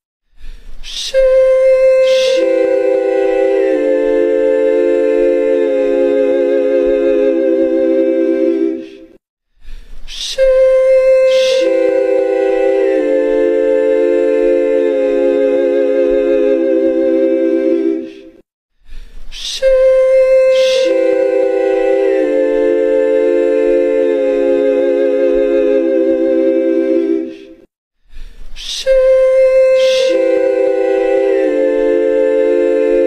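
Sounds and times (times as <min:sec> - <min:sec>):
voices singing a cappella harmony: 0:00.8 - 0:09.2, 0:10.1 - 0:18.4, 0:19.3 - 0:27.7, 0:28.6 - 0:33.0.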